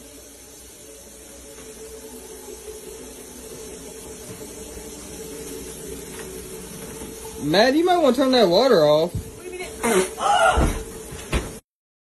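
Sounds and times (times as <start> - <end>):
water running: 0.0 - 11.7.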